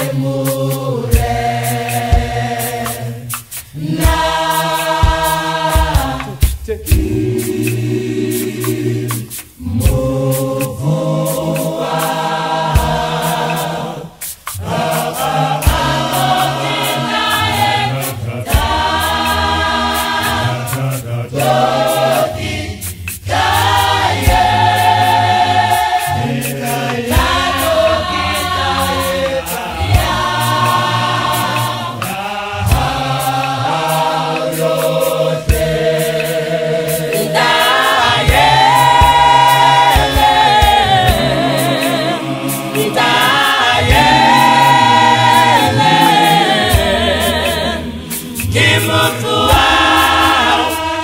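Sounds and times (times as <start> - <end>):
choir singing in harmony: 0.0 - 51.0.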